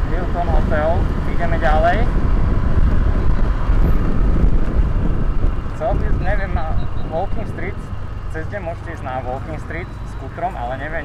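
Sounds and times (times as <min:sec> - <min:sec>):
road traffic: 0:00.0 - 0:11.0
wind and scooter engine rumble: 0:00.0 - 0:11.0.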